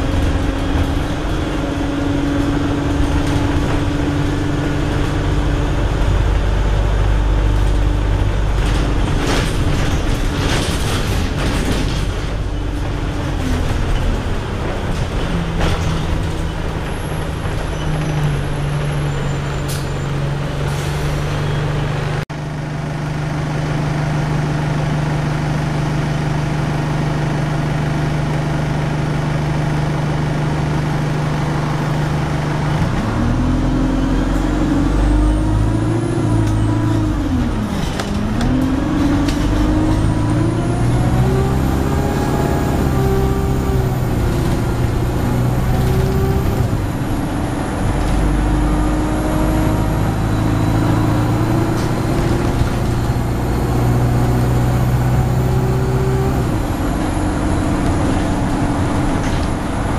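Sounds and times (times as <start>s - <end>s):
bus diesel engine droning: 0.0s - 59.9s.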